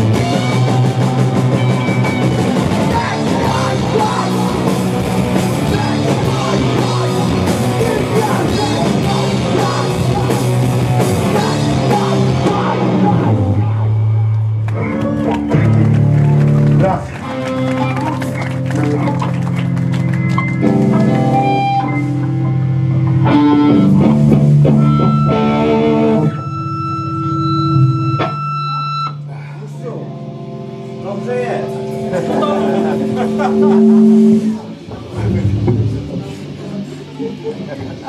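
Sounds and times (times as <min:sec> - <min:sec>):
amplified electric guitars and bass: 0:00.0 - 0:38.0
ringing guitar tone: 0:20.6 - 0:29.3, 0:30.1 - 0:36.4.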